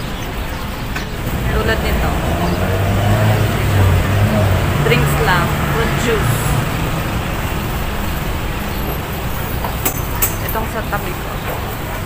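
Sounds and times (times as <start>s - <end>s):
street and market rumble: 0.0s - 12.0s.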